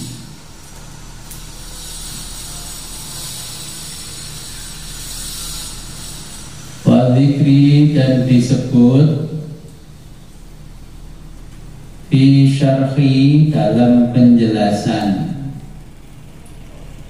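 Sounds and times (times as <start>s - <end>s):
man talking: 6.9s - 9.6s, 12.1s - 15.7s.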